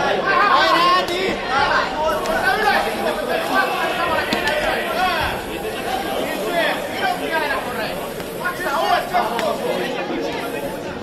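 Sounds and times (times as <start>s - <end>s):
people talking in a large hall: 0.0s - 11.0s.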